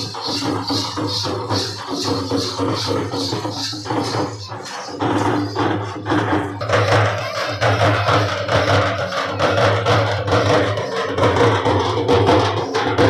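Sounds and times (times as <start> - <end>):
frame drums beaten with sticks: 0.0 - 13.0.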